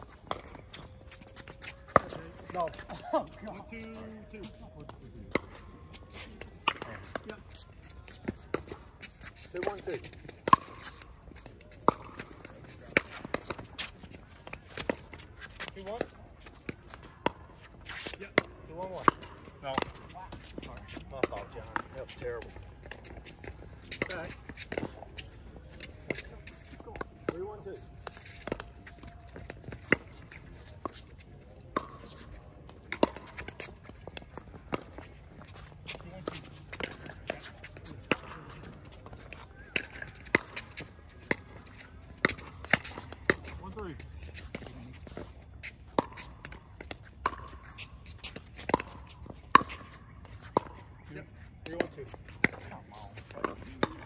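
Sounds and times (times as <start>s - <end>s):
players' voices: 0.0s - 54.0s
ball bouncing on hard court: 32.9s - 38.6s.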